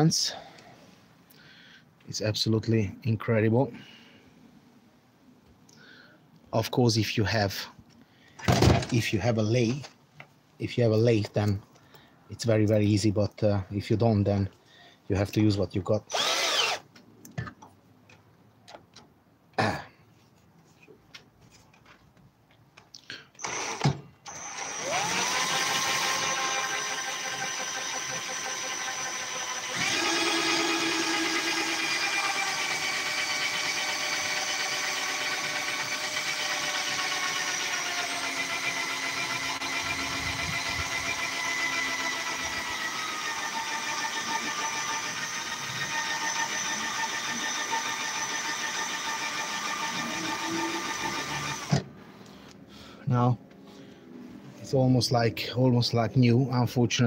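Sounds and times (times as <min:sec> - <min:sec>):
cordless drill whining: 0:16.1 - 0:16.9, 0:23.4 - 0:51.9.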